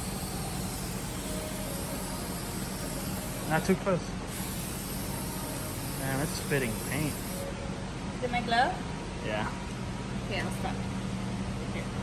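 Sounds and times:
aerosol can spraying: 0.1 - 3.6, 4.3 - 7.4.

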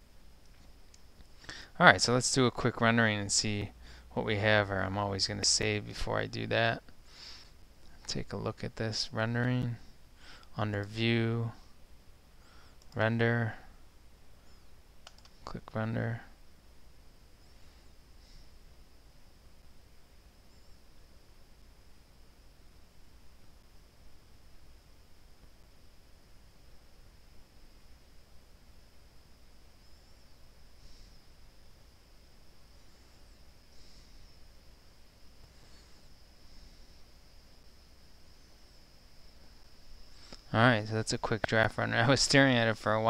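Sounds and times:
steady hiss: 0.0 - 43.0
faint ticks: 14.5 - 15.5.

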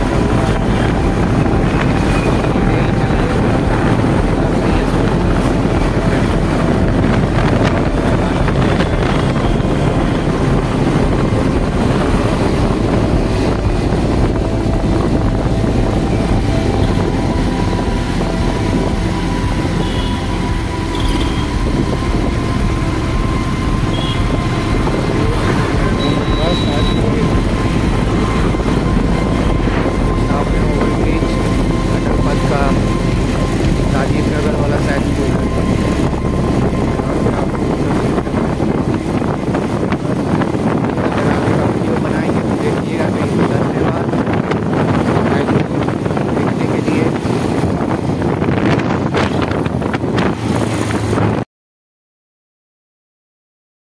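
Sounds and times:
motorcycle engine running: 0.0 - 42.3
wind rush on microphone: 0.0 - 51.5.

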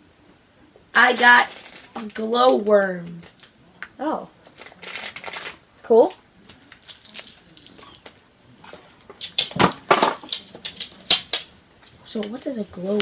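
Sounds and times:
plastic packaging crinkling: 1.0 - 2.2, 4.5 - 5.6, 6.5 - 8.2.

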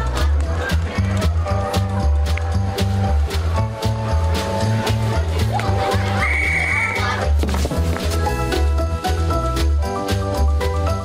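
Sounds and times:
background music with pulsing bass: 0.0 - 11.0.

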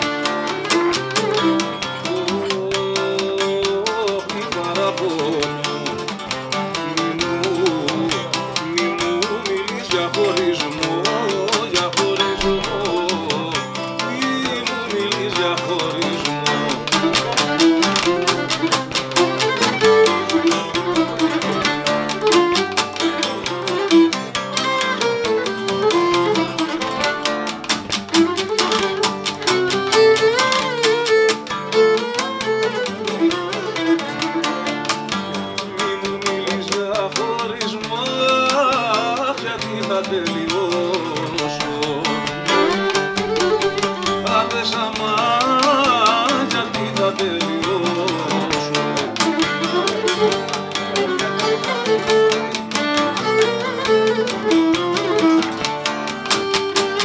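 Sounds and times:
bowed lyra melody: 0.0 - 57.0
lute and guitar strumming: 0.0 - 57.0.

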